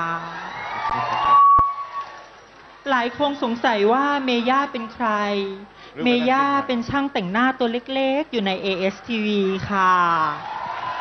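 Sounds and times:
microphone feedback ringing: 1.2 - 2.3.

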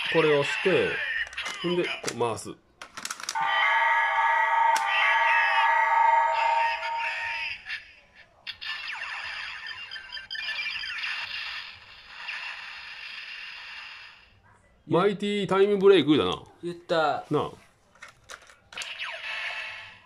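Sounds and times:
electronic effects: 8.5 - 14.1.

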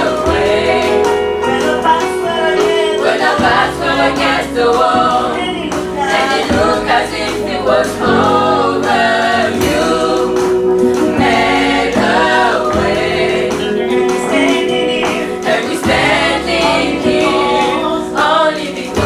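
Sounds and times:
women singing in harmony: 0.0 - 19.0.

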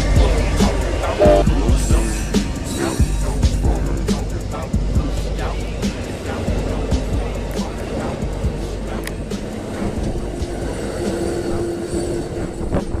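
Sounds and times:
train rumbling past: 0.0 - 13.0
steady tone: 0.9 - 2.2.

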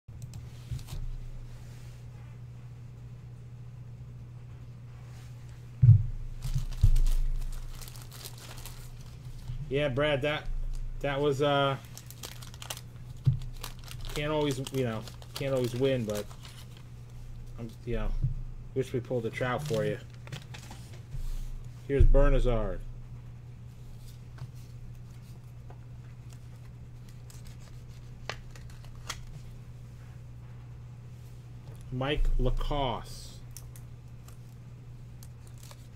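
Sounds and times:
steady low hum: 0.1 - 35.9
short thump: 5.8 - 6.2
wax paper wrapper crinkling: 6.3 - 17.7, 19.1 - 21.0, 23.9 - 29.6, 33.5 - 35.9
card sliding into plastic sleeve: 27.0 - 29.3.

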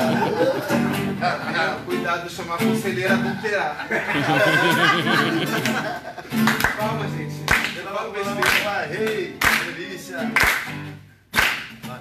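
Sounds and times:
acoustic guitars playing: 0.0 - 12.0
sharp clap-like beat: 5.4 - 12.0.

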